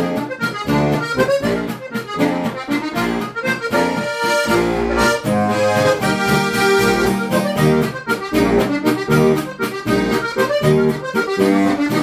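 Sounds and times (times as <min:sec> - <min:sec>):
button accordion playing tune: 0:00.0 - 0:12.0.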